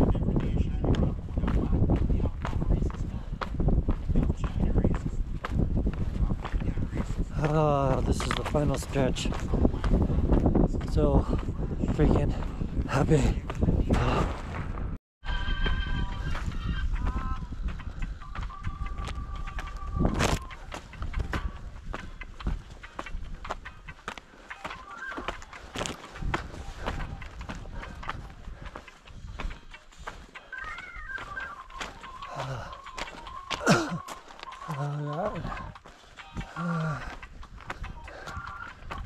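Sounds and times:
footsteps on loose rock: 0.0 - 14.8, 16.0 - 39.0
wind on microphone: 0.0 - 24.0, 25.6 - 29.7.

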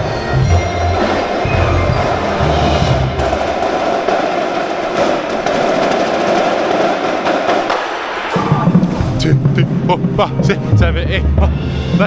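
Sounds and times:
marching drums playing: 0.0 - 12.0
low drum sound: 0.4 - 12.0.

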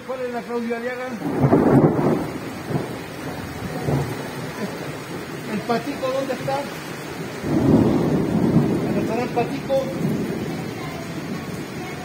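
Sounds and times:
rain falling: 0.0 - 12.0
thunder rumbling: 1.1 - 12.0.

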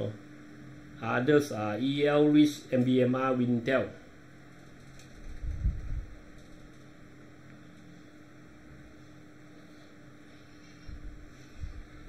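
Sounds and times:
faint mains hum: 0.0 - 12.0
low rumble on microphone: 5.1 - 6.9, 10.8 - 12.0.

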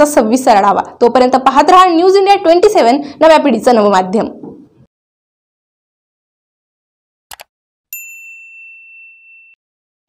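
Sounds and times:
bell-like notification ding: 7.9 - 9.6.

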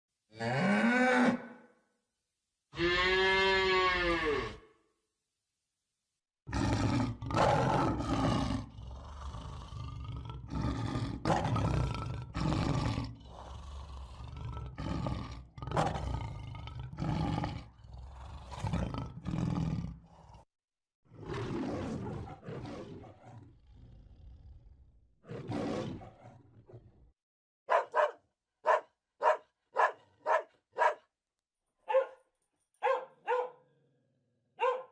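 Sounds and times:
cow mooing: 2.7 - 4.7
lion roaring: 6.5 - 20.5, 21.1 - 27.0.

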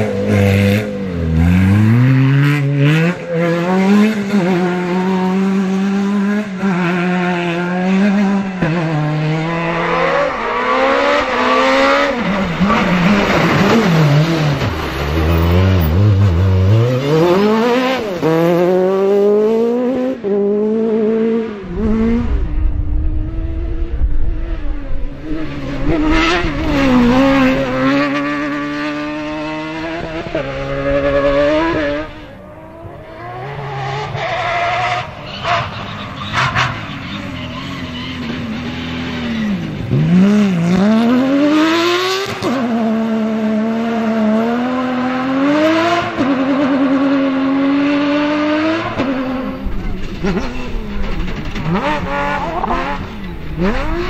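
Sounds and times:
rally car engines revving: 0.0 - 54.0.

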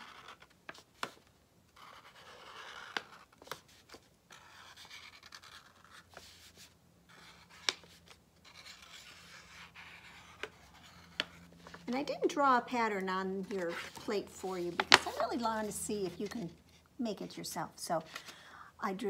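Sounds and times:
pen scratching on paper: 1.8 - 3.2, 4.3 - 6.4, 8.4 - 11.4.

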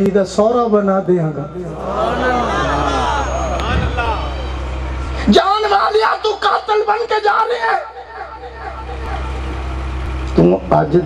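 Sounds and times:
steady low hum: 1.3 - 11.0.

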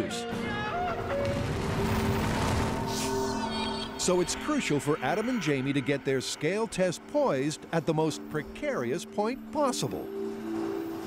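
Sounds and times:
background music chords: 0.0 - 11.0
avalanche rumbling and crashing: 0.7 - 5.2.

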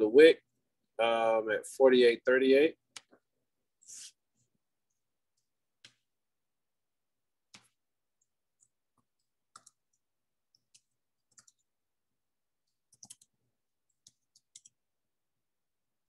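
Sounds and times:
keyboard keys typing: 7.5 - 11.8, 12.6 - 14.8.

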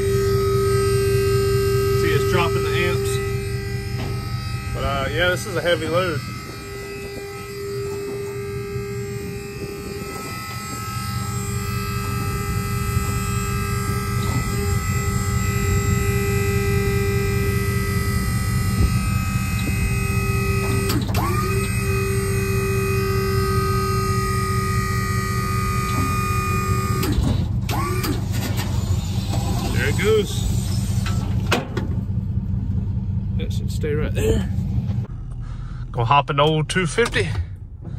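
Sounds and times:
electric hydraulic pump motor hum: 0.0 - 32.2.

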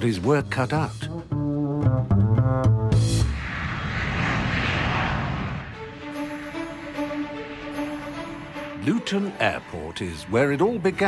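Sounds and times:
jet engine rushing: 3.1 - 8.8.

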